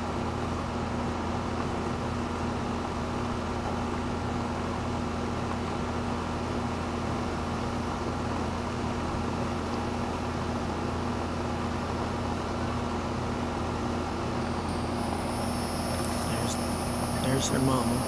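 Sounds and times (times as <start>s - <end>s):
air conditioner humming: 0.0s - 18.0s.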